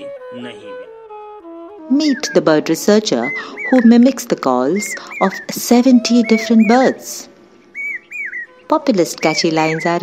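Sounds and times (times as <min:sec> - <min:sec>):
person's voice: 0:01.9 - 0:07.3
cuckoo whistled calls: 0:01.9 - 0:10.0.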